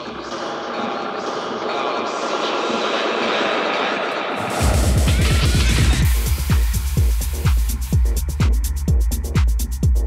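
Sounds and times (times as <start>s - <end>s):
rising noise sweep: 4.3s - 8.0s.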